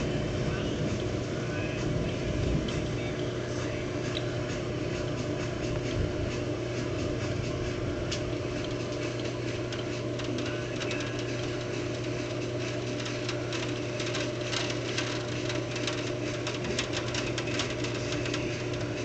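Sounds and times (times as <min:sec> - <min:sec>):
steady low hum: 0:00.0 - 0:19.0
rain patter: 0:00.4 - 0:03.3, 0:08.1 - 0:19.0.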